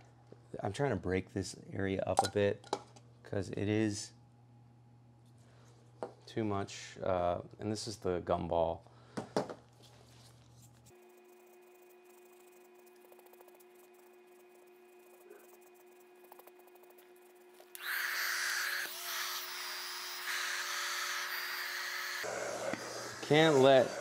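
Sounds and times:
hair dryer blowing: 22.1 - 24.0.

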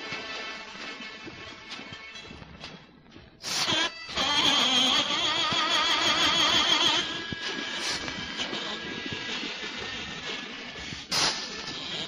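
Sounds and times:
record surface hiss: 0.0 - 12.0.

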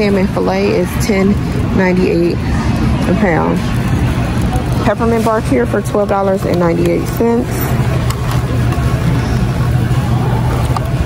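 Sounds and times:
warehouse background drone: 0.0 - 11.0.

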